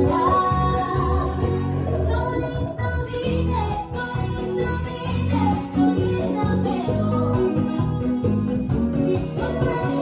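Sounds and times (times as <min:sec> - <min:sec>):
person singing: 0:00.0 - 0:07.9, 0:09.0 - 0:10.0
bass line: 0:00.0 - 0:10.0
plucked guitar: 0:00.0 - 0:10.0.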